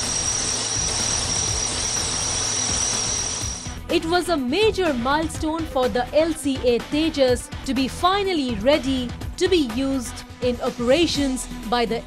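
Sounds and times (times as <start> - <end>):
high-pitched whine: 0.0 - 3.8
background music: 0.0 - 12.0.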